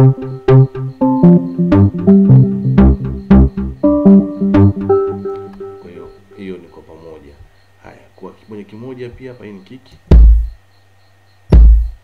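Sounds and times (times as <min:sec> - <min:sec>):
piano-like keyboard notes: 0:00.0 - 0:07.2
deep low thuds: 0:10.1 - 0:10.6, 0:11.5 - 0:12.0.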